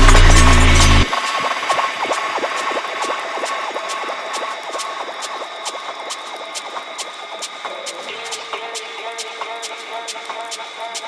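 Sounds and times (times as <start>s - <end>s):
ticking hi-hats: 0.0s - 11.0s.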